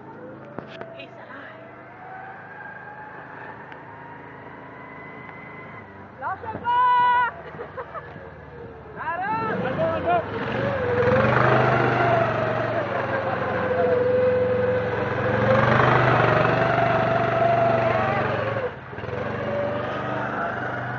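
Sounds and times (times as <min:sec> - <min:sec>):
small engine revving: 0:09.4 - 0:20.9.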